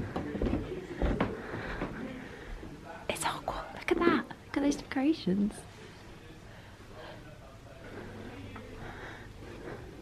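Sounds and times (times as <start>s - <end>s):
whispered voices: 0.0s - 10.0s.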